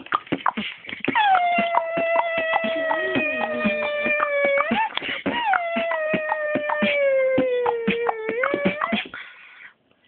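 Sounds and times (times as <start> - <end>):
held howl-like vocal tone: 1.2 - 9.0.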